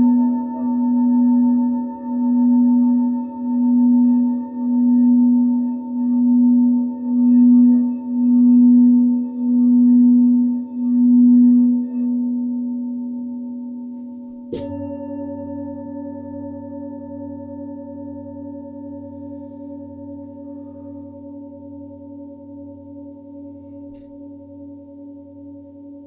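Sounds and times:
singing bowl low tone: 0.0s - 26.0s.

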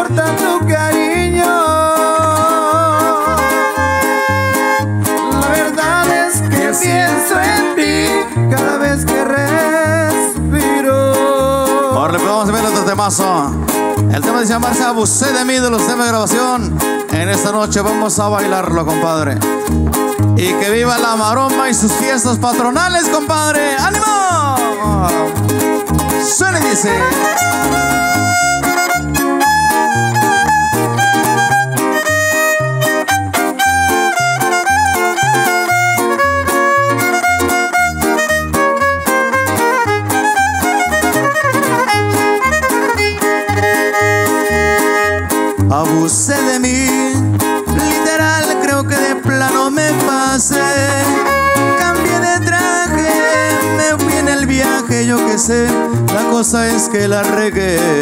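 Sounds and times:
strummed guitars: 0.0s - 58.0s
violin melody: 1.1s - 10.6s, 22.9s - 46.3s, 47.6s - 56.2s.

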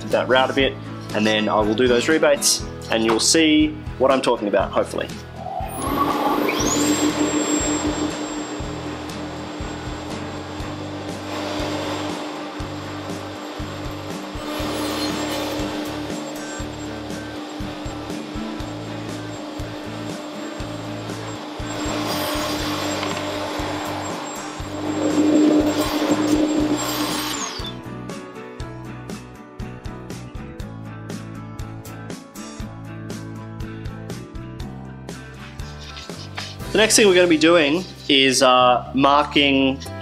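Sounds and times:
router motor whining: 5.7s - 10.2s, 14.4s - 27.8s
router bit cutting wood: 5.8s - 10.0s, 19.9s - 27.8s.

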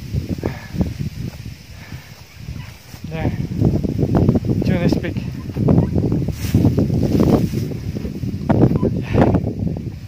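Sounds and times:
wind rumble on microphone: 0.0s - 10.0s
man talking: 3.0s - 3.5s, 4.6s - 5.4s.

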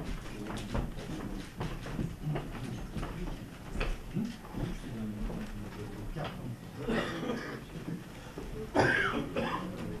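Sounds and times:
person coughing: 6.8s - 7.6s, 8.8s - 9.8s.

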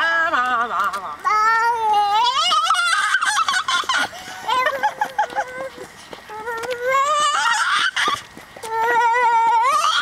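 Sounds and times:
toddler vocalizing: 1.3s - 10.0s.

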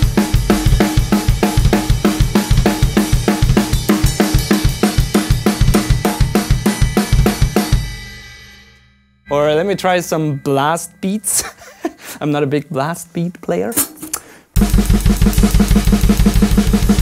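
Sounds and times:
drum kit playing metal beat: 0.0s - 11.4s, 14.6s - 17.0s
cymbal ringing: 0.1s - 11.4s.

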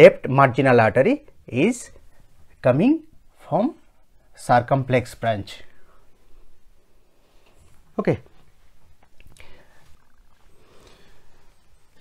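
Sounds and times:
short breath: 9.3s - 11.6s.

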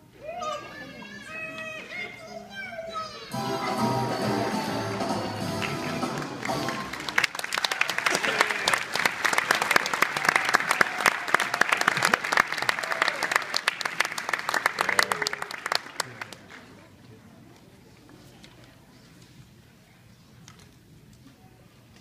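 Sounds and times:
voices in crowd: 0.0s - 8.9s
audience applauding: 4.2s - 16.9s.

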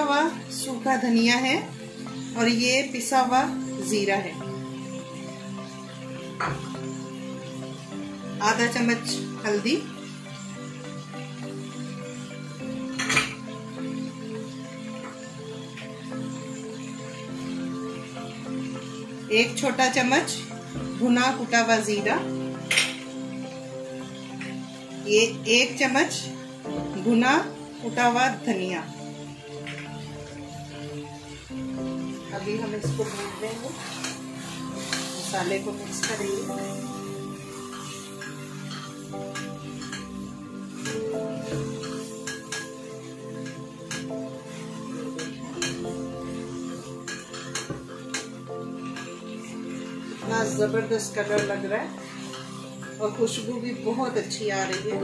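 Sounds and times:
background music: 0.0s - 55.0s
food frying: 0.0s - 55.0s
spatula scraping a pan: 32.1s - 50.6s, 51.3s - 53.1s.

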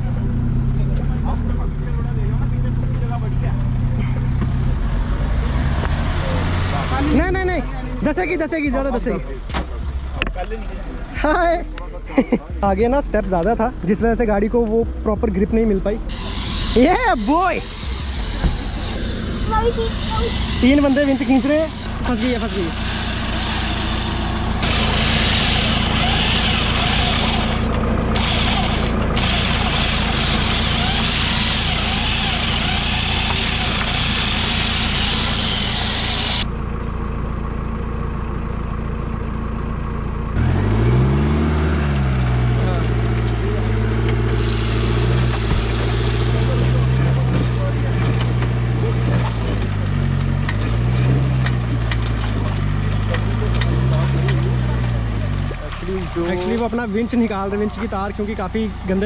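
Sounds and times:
jeep engine revving: 0.0s - 36.6s, 40.0s - 59.0s.

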